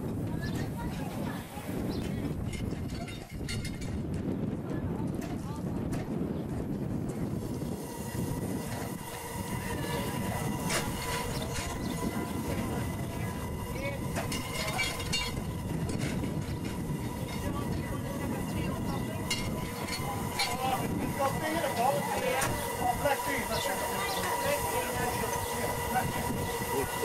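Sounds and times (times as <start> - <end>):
miniature train rumbling: 0.0 - 27.0
wheels clicking on rails: 0.0 - 27.0.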